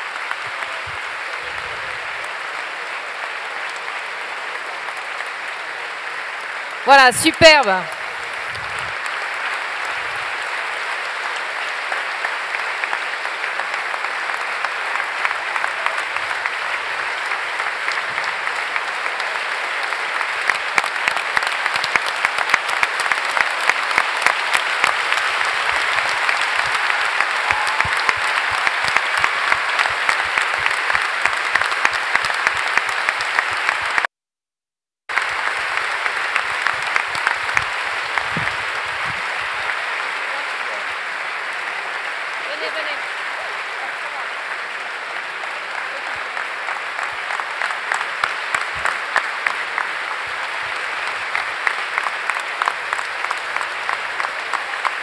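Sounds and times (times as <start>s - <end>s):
large audience applauding: 0.0s - 34.1s, 35.1s - 55.0s.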